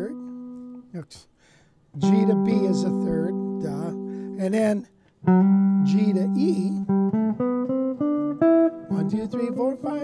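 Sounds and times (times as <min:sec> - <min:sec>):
guitar interval plucked: 0:00.0 - 0:01.0, 0:02.0 - 0:10.0.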